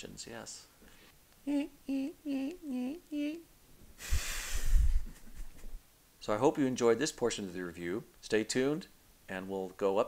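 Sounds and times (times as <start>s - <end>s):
person humming: 1.4s - 3.5s.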